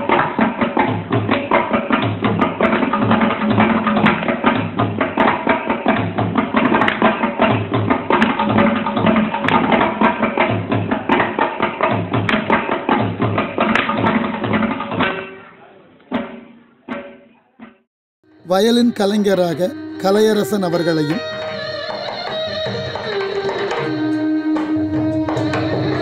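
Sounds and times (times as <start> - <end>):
mridangam crisp strokes: 0.0 - 17.8, 18.5 - 26.0.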